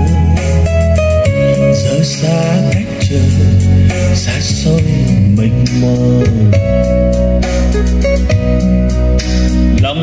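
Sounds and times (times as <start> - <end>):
song over loudspeakers: 0.0 - 10.0
steady bass: 0.0 - 10.0.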